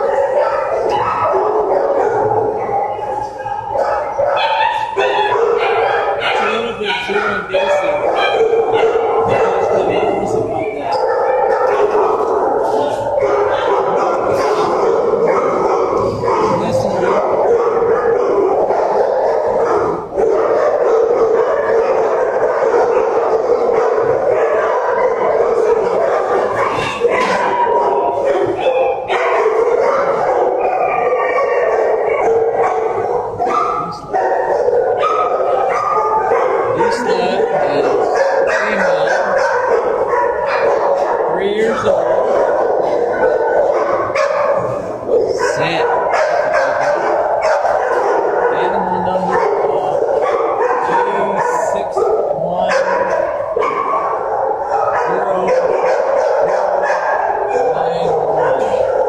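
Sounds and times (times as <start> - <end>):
many dogs barking: 0.0 - 59.0.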